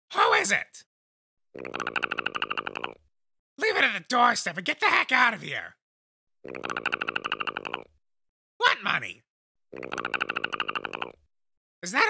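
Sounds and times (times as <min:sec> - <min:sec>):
fast throaty chattering rattle: 0:01.6 - 0:03.0, 0:06.4 - 0:07.9, 0:09.8 - 0:11.2.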